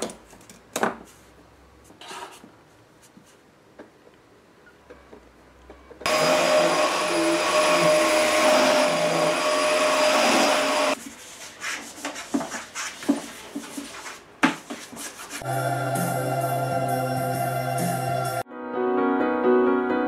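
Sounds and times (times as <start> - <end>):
vacuum cleaner running: 6.1 - 11.0.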